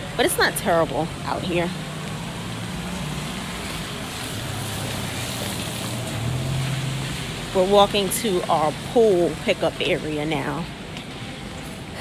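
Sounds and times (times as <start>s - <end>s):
low engine hum: 0.0s - 12.0s
tyres hissing on wet road: 0.0s - 12.0s.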